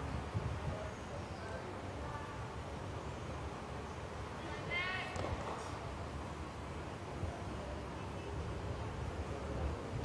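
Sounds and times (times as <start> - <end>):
wind rumble on microphone: 0.0 - 2.7, 6.8 - 10.0.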